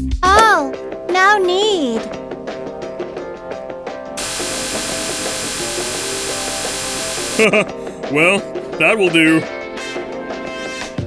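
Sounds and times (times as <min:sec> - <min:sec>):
light background music: 0:00.0 - 0:11.0
electric buzzing beam: 0:04.2 - 0:07.5
person laughing: 0:07.4 - 0:07.8.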